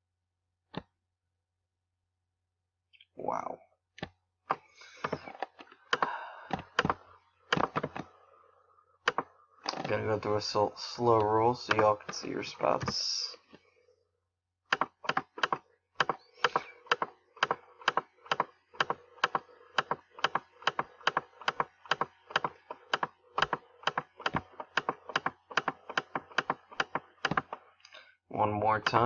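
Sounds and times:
computer mouse clicking: 0:09.1 - 0:09.8, 0:14.7 - 0:27.6.

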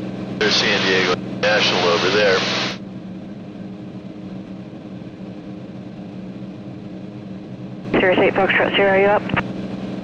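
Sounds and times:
propeller engine droning in cabin: 0:00.0 - 0:10.0.

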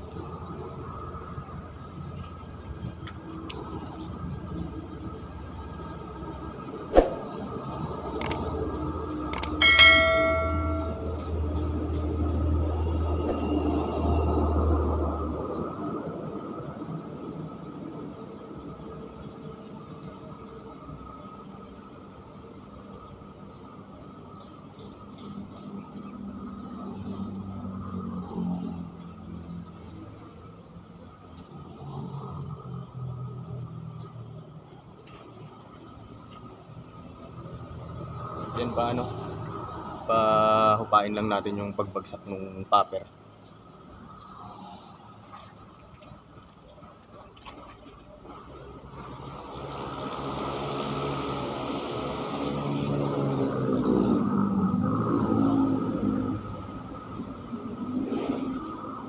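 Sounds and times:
click: 0:08.2 - 0:08.4, 0:09.4 - 0:09.6
bell-like ding: 0:09.4 - 0:11.3.

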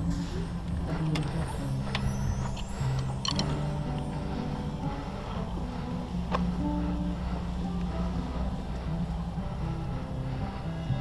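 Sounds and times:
distant brass long low notes: 0:00.0 - 0:11.0.

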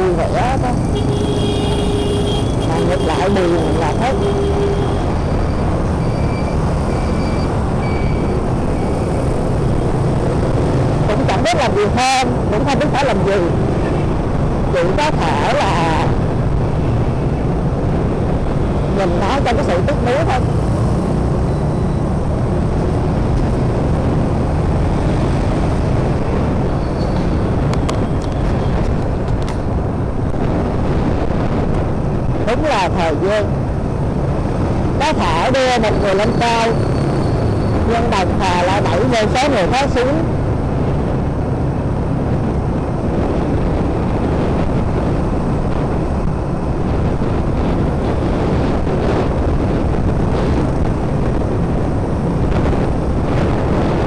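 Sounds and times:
motorbike traffic: 0:00.0 - 0:54.0
road and wind noise: 0:00.0 - 0:54.0.

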